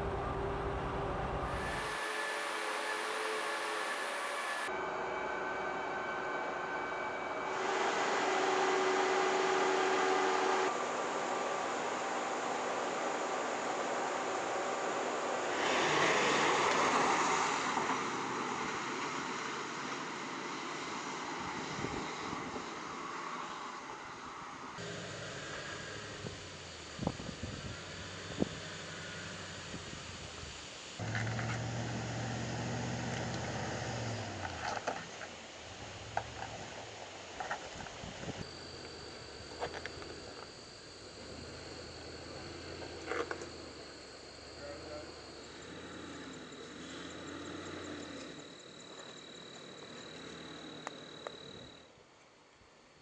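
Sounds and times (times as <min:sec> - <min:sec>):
pickup truck rumbling: 0:00.0 - 0:01.6, 0:31.0 - 0:37.1
crickets droning: 0:00.0 - 0:53.0.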